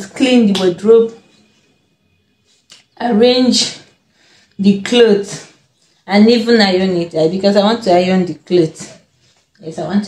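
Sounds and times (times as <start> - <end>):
woman speaking: 0.0 - 1.3, 3.0 - 4.0, 4.6 - 10.0.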